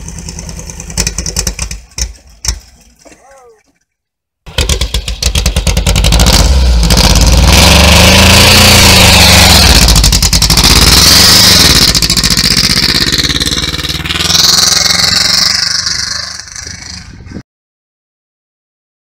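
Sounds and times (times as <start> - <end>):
car engine revving: 4.5 - 17.3.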